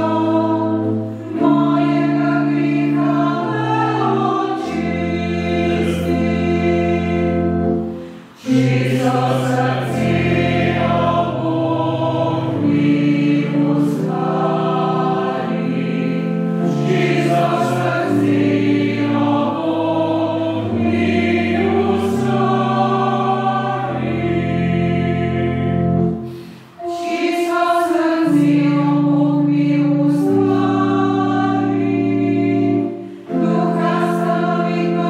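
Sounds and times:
choir singing a hymn: 0:00.0 - 0:35.0.

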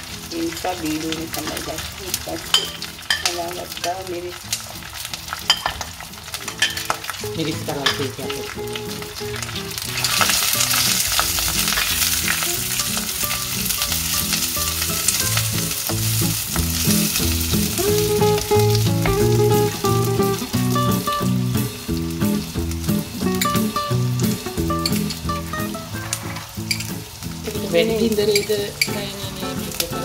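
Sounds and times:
vegetables sizzling in hot oil: 0:00.0 - 0:30.0
low stepped notes: 0:12.5 - 0:27.4.

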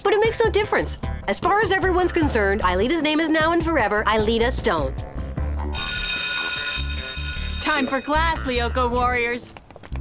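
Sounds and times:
electric school bell ringing: 0:05.7 - 0:08.8.

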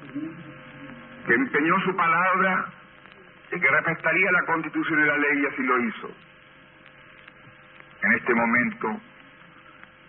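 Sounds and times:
recording hum and hiss: 0:00.0 - 0:10.0.

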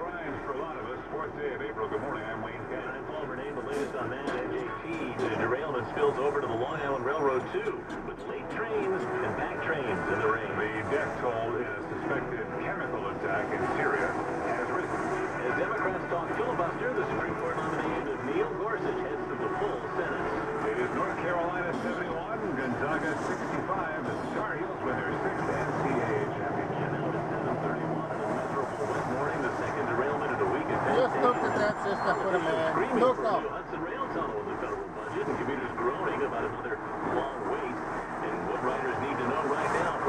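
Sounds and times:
radio voice talking: 0:00.0 - 0:40.0
truck engine and road rumble: 0:00.0 - 0:40.0.

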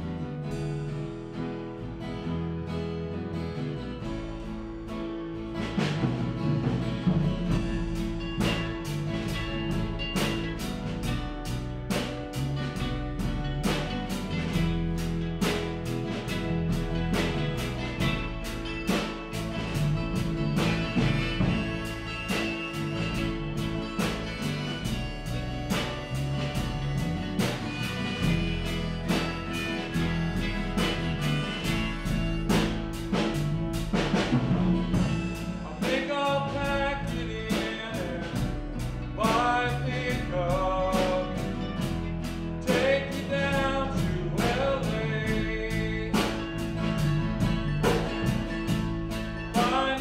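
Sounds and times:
country-rock band playing: 0:00.0 - 0:50.0
man singing: 0:35.0 - 0:47.1, 0:49.4 - 0:50.0.

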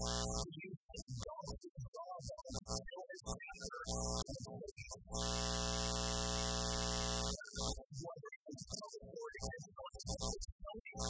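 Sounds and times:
loud electronic buzz: 0:00.0 - 0:00.5, 0:03.9 - 0:04.4, 0:05.1 - 0:07.8
man speaking: 0:00.0 - 0:05.0, 0:07.4 - 0:11.0.

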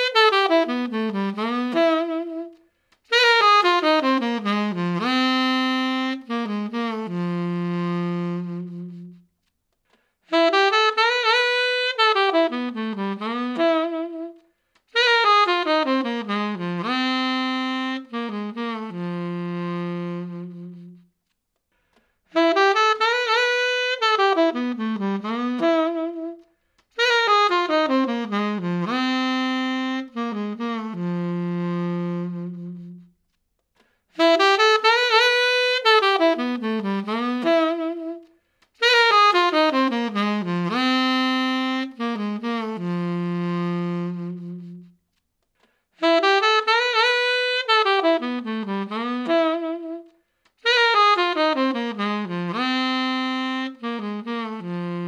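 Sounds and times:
tenor saxophone solo: 0:00.0 - 0:55.0.

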